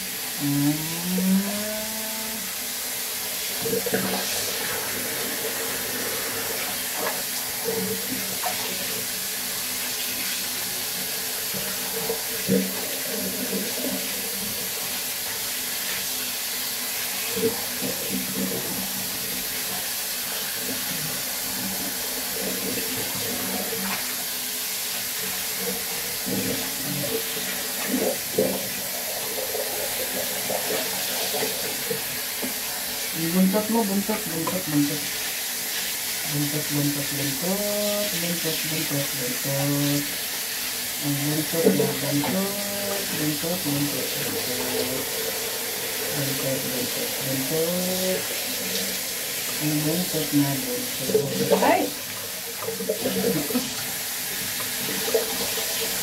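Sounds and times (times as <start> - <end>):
water running into sink: 0.0 - 56.0.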